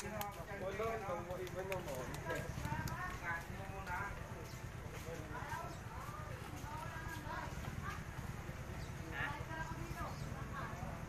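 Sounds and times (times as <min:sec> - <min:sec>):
indistinct talking: 0:00.0 - 0:11.0.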